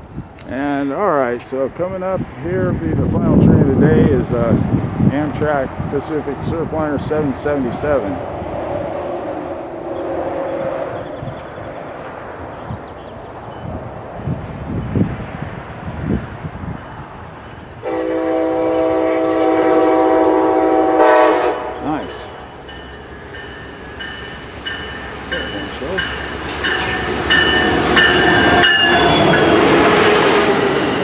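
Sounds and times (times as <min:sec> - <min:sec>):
multi-tone train horn blast: 0:09.2 - 0:11.2, 0:17.8 - 0:22.4, 0:27.5 - 0:30.8.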